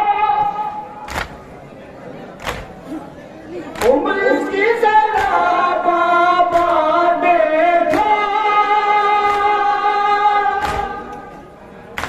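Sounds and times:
chest-beating slaps: 1.0s - 1.4s, 2.4s - 2.8s, 5.2s - 5.4s, 6.5s - 6.8s, 9.2s - 9.5s, 10.6s - 11.3s
men chanting in unison: 3.8s - 11.4s.

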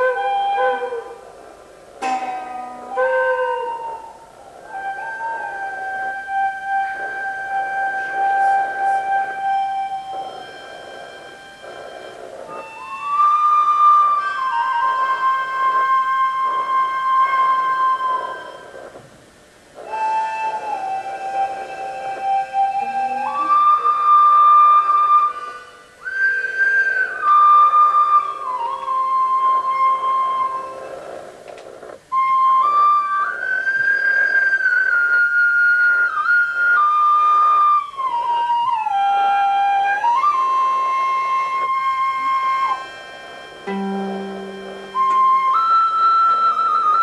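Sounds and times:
flute-like wind instrument melody: 0.0s - 19.1s, 19.7s - 47.0s.

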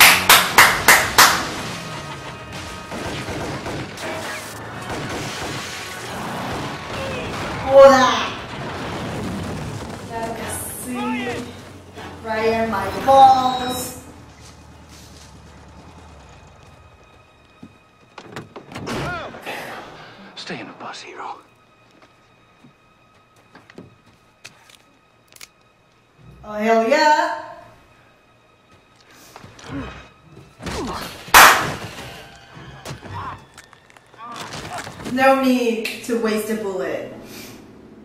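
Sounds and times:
pistol shot: 31.3s - 31.9s.

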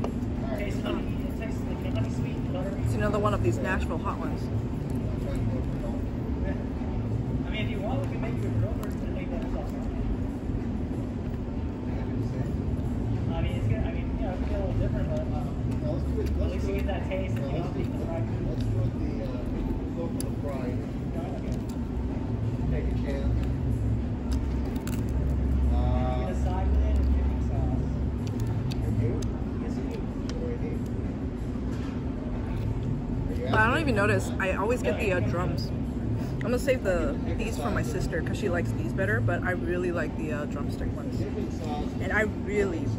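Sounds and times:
low rumble and hum: 0.0s - 42.9s.

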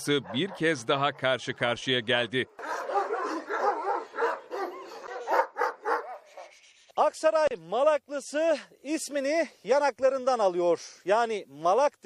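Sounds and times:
large dog barking: 0.0s - 0.8s, 2.6s - 6.5s.

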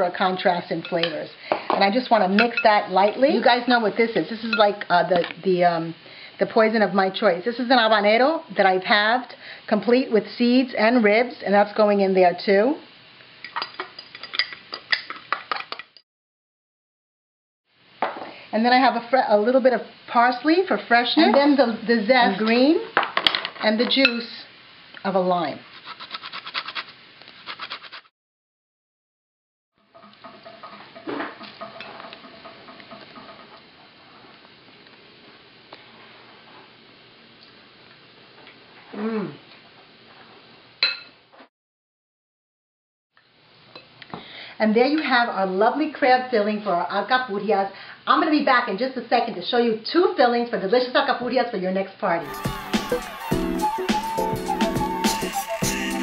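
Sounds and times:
glass bowls clinking: 2.4s - 3.4s
lime rasping on a grater: 25.7s - 28.1s.

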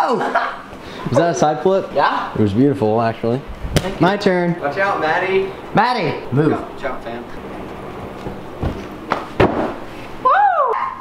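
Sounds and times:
person whooping: 10.2s - 11.0s.

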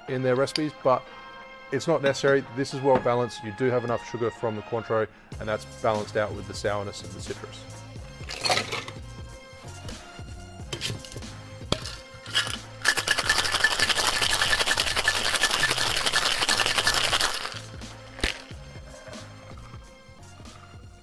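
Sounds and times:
background music: 0.0s - 21.0s
ice rattling in metal shaker: 8.3s - 8.9s, 10.7s - 18.6s.

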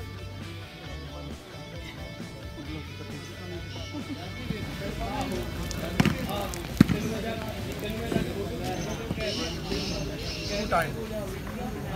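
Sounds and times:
people talking: 0.0s - 11.9s.

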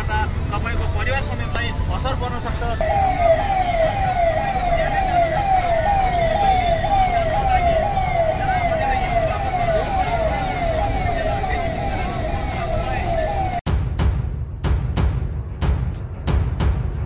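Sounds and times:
street and crowd rumble: 0.0s - 13.7s
electronic siren wailing: 1.7s - 13.6s.

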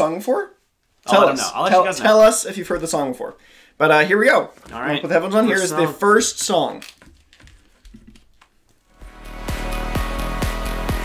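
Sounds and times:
faint clicks and rustles: 6.7s - 8.9s.

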